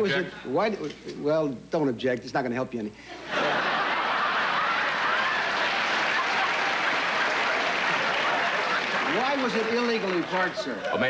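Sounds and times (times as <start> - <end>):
audience laughing: 3.2 - 11.0
audience clapping: 3.9 - 11.0.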